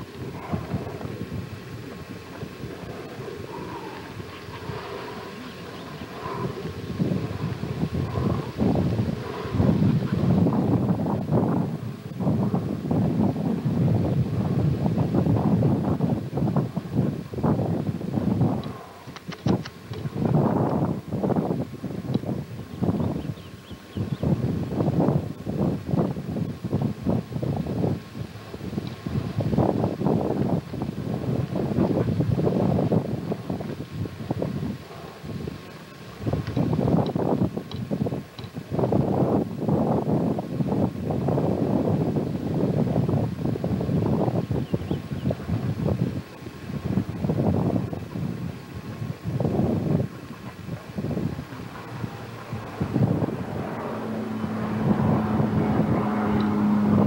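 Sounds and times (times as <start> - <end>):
wind buffeting microphone: 0.0 - 57.0
sharp clicks: 18.6 - 20.0.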